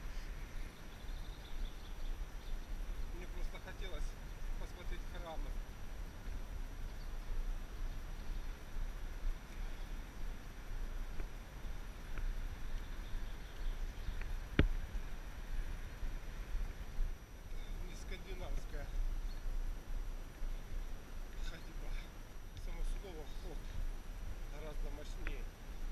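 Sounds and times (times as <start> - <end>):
wind rumble on microphone: 0.0 - 25.9.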